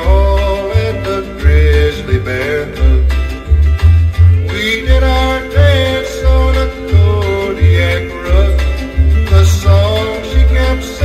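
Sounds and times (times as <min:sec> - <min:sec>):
bass notes on steady beat: 0:00.0 - 0:11.0
plucked-string melody: 0:00.0 - 0:11.0.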